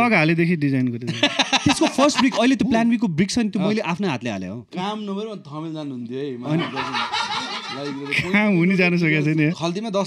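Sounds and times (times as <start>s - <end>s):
men laughing: 1.1s - 2.7s, 6.5s - 9.6s.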